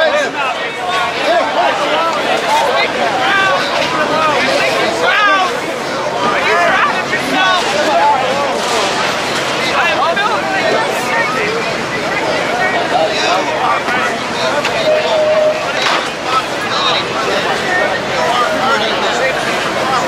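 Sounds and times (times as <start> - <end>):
crowd talking and shouting: 0.0 - 20.0.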